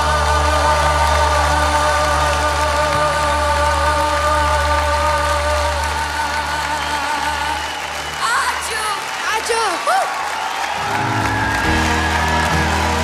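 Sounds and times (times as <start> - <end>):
person singing long held note: 0.0 - 8.0
audience applauding: 0.0 - 13.0.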